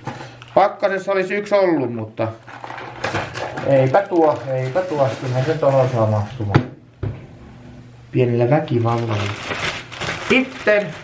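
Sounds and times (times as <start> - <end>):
plastic bag rustling: 2.4 - 6.4, 8.7 - 11.0.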